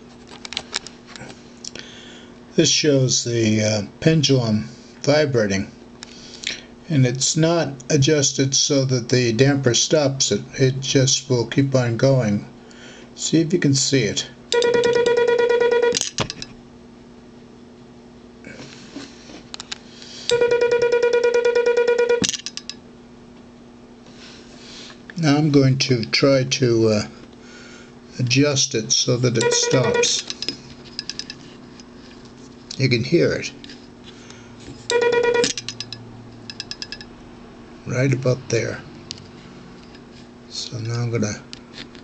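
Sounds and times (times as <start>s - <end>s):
morse code tone dits: 14.6s - 16.0s, 20.3s - 22.3s, 29.3s - 30.3s, 34.9s - 35.6s
pendulum contacts ticking: 34.9s - 37.1s.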